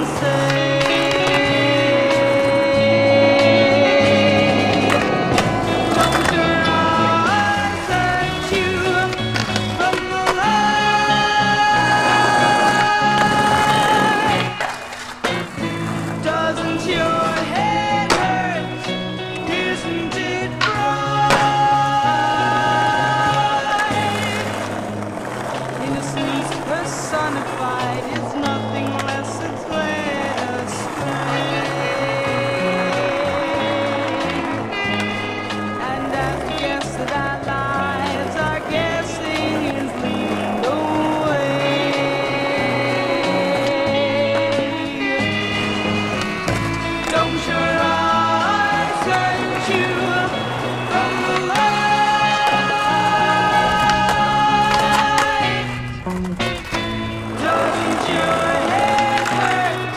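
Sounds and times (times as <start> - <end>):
music track: 0.0 - 59.9
skateboard clacking on concrete: 0.0 - 59.9.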